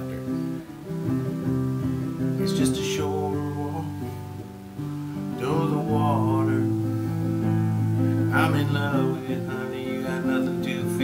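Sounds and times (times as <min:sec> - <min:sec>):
acoustic guitar strummed and picked: 0:00.0 - 0:11.0.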